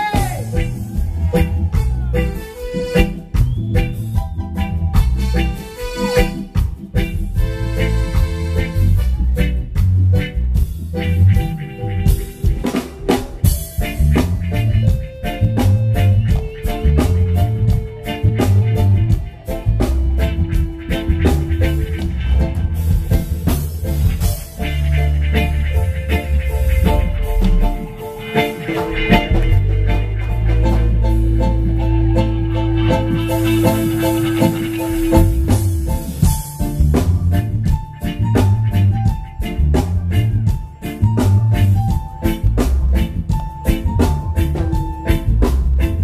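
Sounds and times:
deep bass line: 0:00.0 - 0:46.0
electric guitars: 0:00.0 - 0:46.0
reggae band playing: 0:00.0 - 0:46.0.

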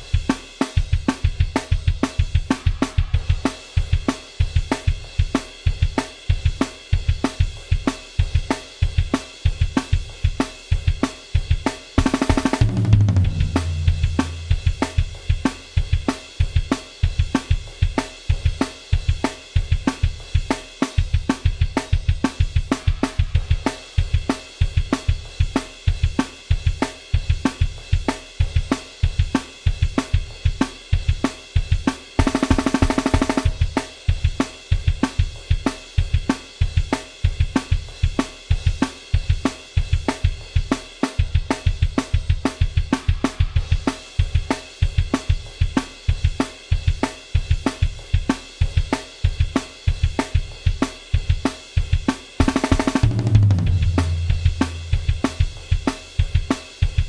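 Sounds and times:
driving rock drum beat: 0:00.0 - 0:57.0
fast drum roll fill: 0:00.0 - 0:57.0.

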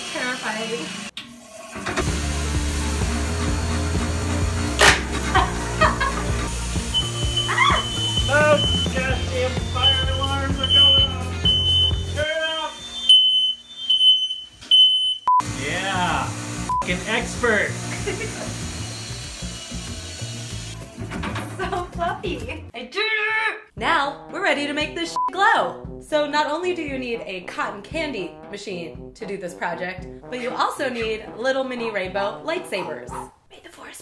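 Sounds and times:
music with heavy bass: 0:02.0 - 0:12.2
smoke alarm beeping: 0:06.7 - 0:15.5.

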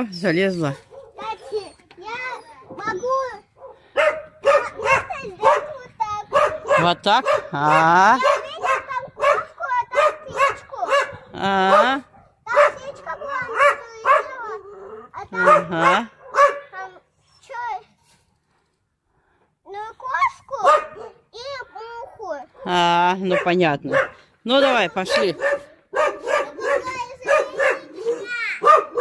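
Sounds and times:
dog barking: 0:00.7 - 0:01.6, 0:03.6 - 0:14.7, 0:15.4 - 0:16.8, 0:20.6 - 0:21.2, 0:22.5 - 0:24.2, 0:25.1 - 0:29.0.

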